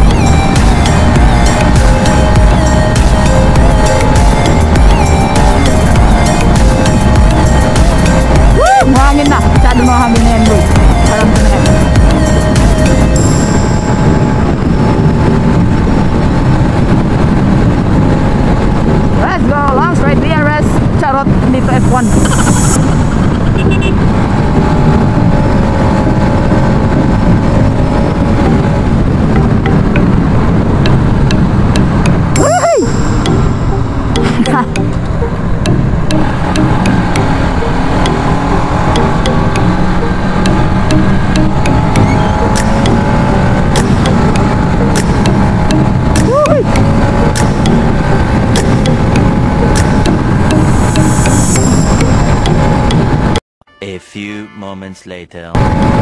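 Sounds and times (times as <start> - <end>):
motorcycle engine: 0.0 - 53.4
wind rush on microphone: 0.0 - 53.4, 55.6 - 56.0.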